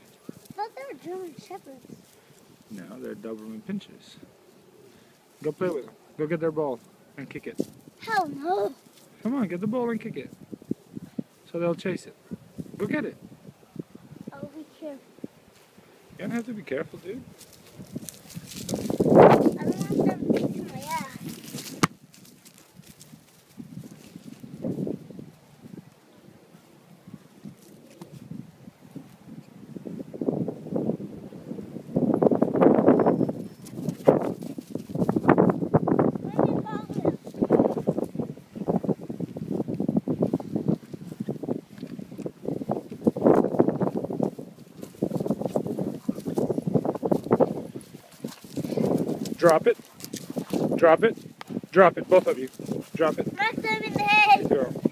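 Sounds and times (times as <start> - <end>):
running footsteps on dry grass: 16.9 - 25.4, 32.7 - 54.9.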